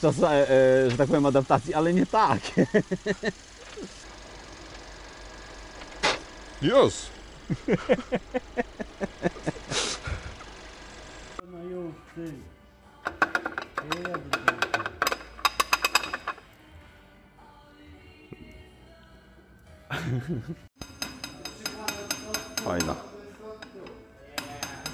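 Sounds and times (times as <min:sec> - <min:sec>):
rapid metallic knocking: 0:20.8 - 0:24.9.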